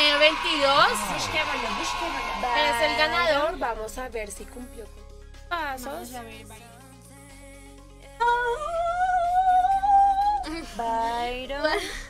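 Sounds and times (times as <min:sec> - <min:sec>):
quiet background music: 0:00.0 - 0:12.0
woman singing: 0:02.6 - 0:12.0.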